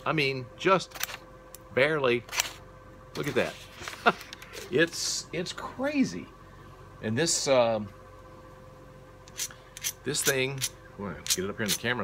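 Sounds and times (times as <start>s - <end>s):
faint steady hum: 0.0s - 12.0s
hand tools clicking: 9.3s - 11.9s.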